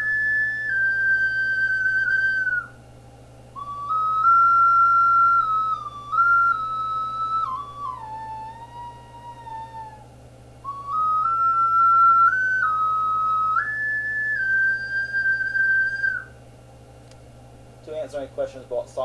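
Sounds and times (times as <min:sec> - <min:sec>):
ocarina playing slow melody: 0:00.0 - 0:02.8, 0:03.6 - 0:16.4.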